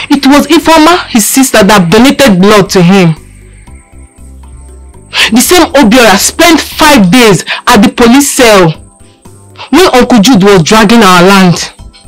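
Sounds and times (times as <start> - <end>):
soft background film music: 0.0 - 12.0.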